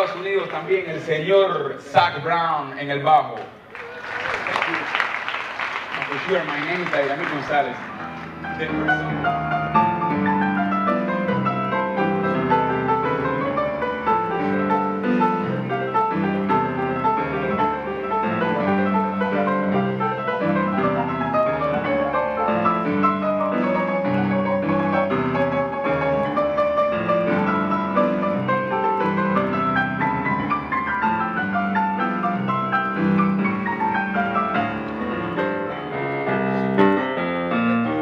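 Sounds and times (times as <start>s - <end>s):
grand piano playing: 0.0s - 2.7s, 4.4s - 38.0s.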